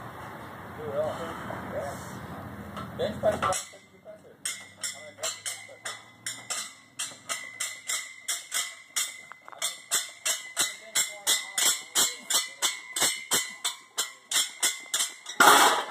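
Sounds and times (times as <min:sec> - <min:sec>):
steel weight plates clinking: 0:03.3 - 0:15.9.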